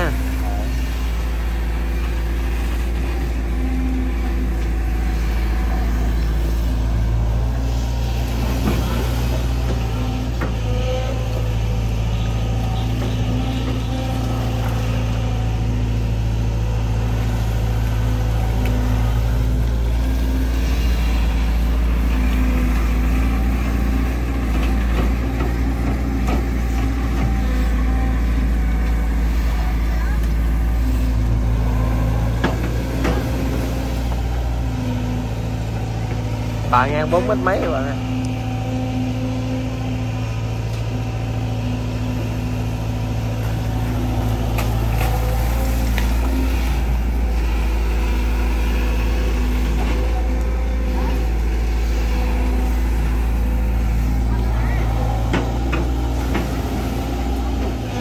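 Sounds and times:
excavator diesel engine: 0:00.0 - 0:58.0.

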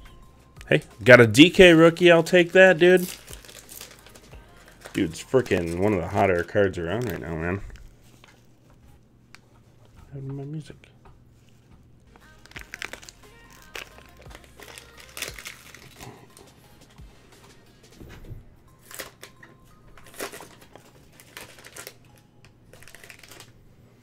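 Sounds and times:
faint background music: 0:00.0 - 0:24.0
packaging crinkling and rustling: 0:01.0 - 0:08.6, 0:12.2 - 0:16.5, 0:18.8 - 0:23.6.

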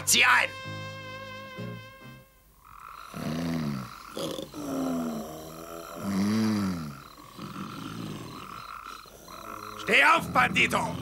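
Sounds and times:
night insects chirping: 0:00.0 - 0:11.0
cartoon snoring: 0:03.1 - 0:11.0.

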